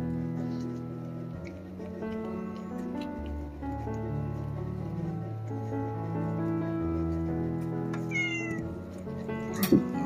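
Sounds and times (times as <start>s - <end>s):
background music: 0.0s - 10.0s
cat meowing: 8.0s - 8.7s.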